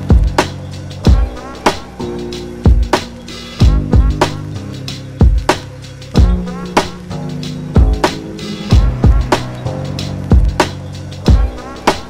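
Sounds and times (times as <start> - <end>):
hip hop instrumental beat: 0.0 - 12.0.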